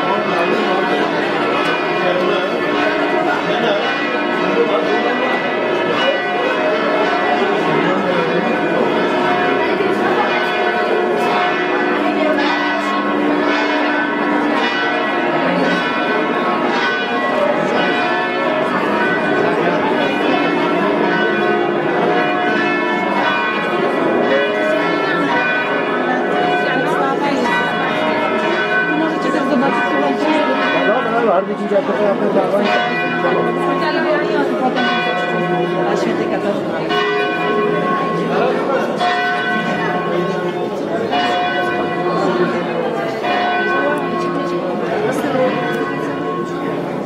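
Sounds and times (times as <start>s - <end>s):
church bells pealing: 0.0s - 47.0s.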